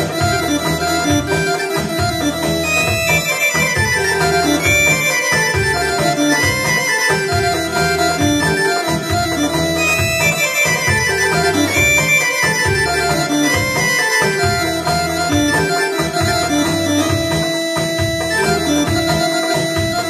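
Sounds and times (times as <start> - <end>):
electronic keyboard dance tune: 0.0 - 20.0.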